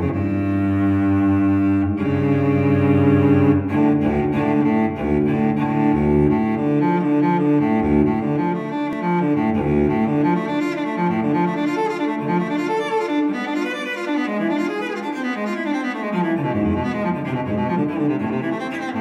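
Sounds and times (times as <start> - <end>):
music with low bowed strings: 0.0 - 19.0.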